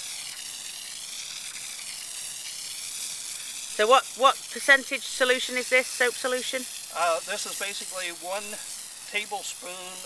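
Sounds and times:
hose nozzle spraying water on grass: 0:00.0 - 0:10.0.

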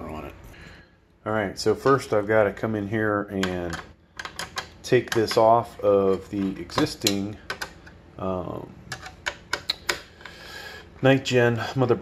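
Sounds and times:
faint handling noise: 0:03.3 - 0:08.0.

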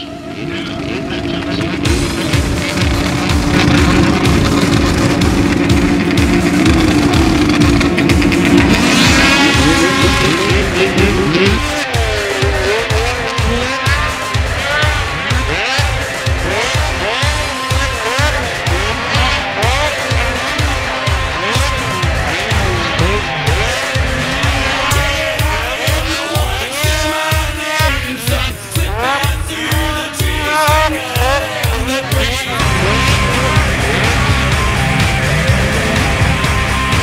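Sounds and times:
snowmobile engines revving: 0:00.0 - 0:37.0
music with steady beat: 0:01.8 - 0:37.0.

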